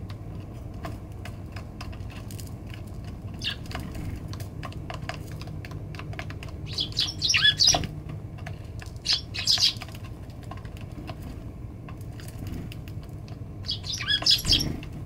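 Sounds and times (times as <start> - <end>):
beaks tapping on wood: 0.0 - 14.9
sparrows chirping: 3.3 - 3.8, 6.4 - 7.9, 9.0 - 10.1, 13.6 - 14.9.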